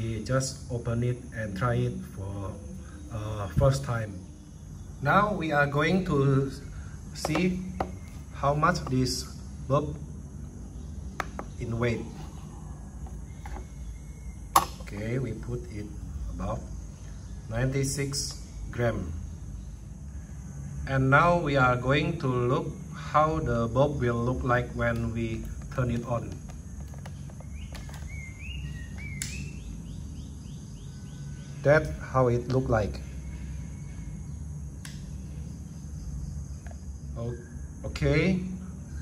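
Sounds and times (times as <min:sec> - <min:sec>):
low steady background hum: 0:00.0 - 0:39.0
bird whistled calls: 0:27.6 - 0:30.0
sharp click: 0:29.1 - 0:29.5.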